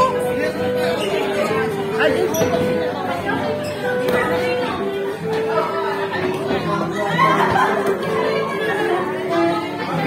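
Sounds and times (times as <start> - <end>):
many people talking: 0.0 - 10.0.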